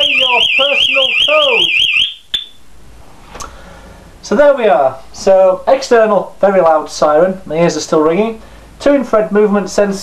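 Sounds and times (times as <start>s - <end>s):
alarm siren warbling: 0.0s - 2.6s
short bleep: 2.3s - 2.6s
faint click: 3.4s - 3.6s.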